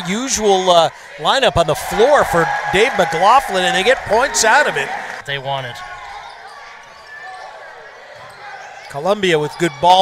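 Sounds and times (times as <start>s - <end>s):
faint crowd murmur and voices: 0.0s - 10.0s.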